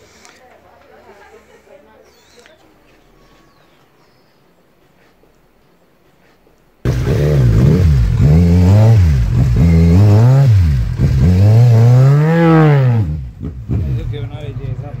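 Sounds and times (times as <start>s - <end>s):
motorcycle engine revving: 6.9s - 15.0s.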